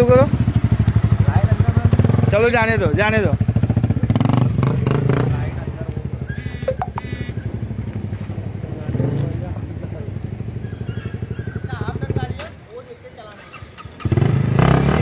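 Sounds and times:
motorcycle engine running: 0.0s - 10.5s.

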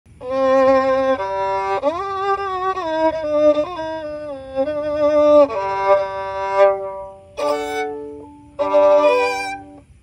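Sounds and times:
bowed string instrument: 0.1s - 10.0s.

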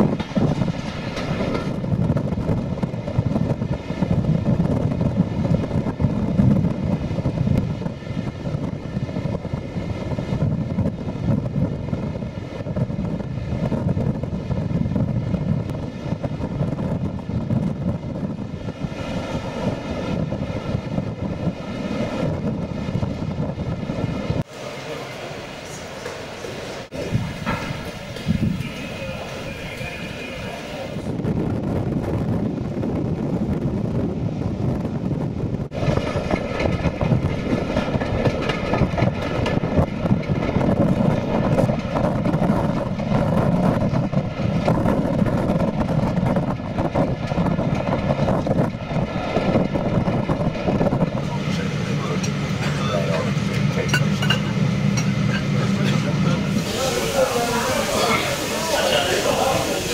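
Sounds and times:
steam train running: 0.0s - 59.9s
people chatting: 28.5s - 31.1s, 51.2s - 54.1s, 55.6s - 59.9s.

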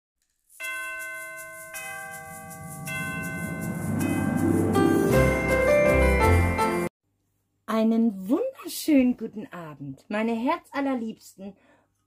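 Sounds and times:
bell-like chime strikes: 0.6s - 6.9s
intro music bed: 1.3s - 6.9s.

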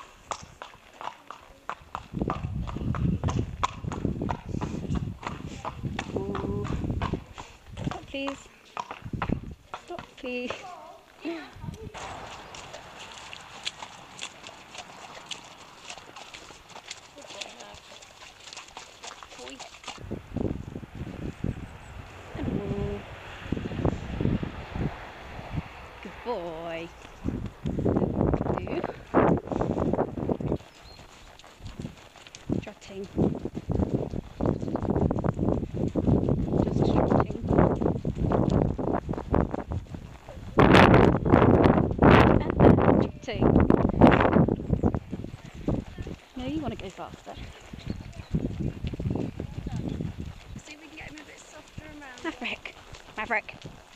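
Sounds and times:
hoofbeats on sand: 0.0s - 25.1s, 26.2s - 53.9s
hooves on muddy track: 0.0s - 53.9s
wind rushing over microphone: 1.8s - 8.4s, 9.0s - 9.6s, 11.5s - 14.6s, 20.0s - 53.9s.

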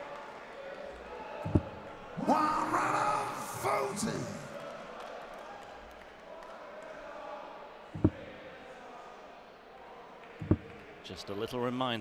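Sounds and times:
murmur of indoor crowd: 0.0s - 12.0s.

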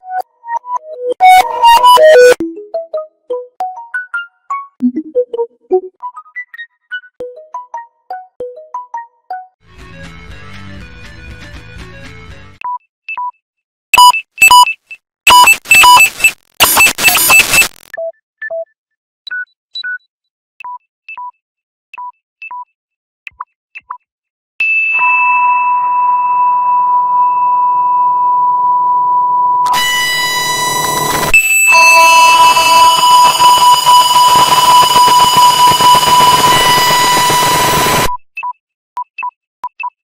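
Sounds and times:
short high-pitched beeps: 14.0s - 17.8s.

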